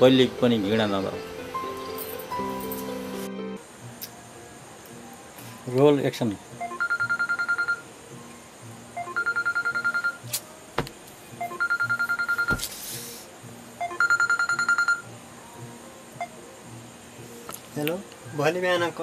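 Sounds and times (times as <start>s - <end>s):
mobile phone ringtone: 6.6s - 7.9s, 9.0s - 10.2s, 11.4s - 12.6s, 13.8s - 15.1s.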